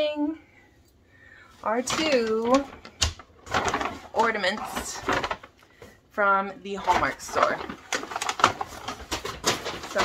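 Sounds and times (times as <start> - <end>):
paper bag rustling: 1.8 - 5.5, 6.7 - 10.0.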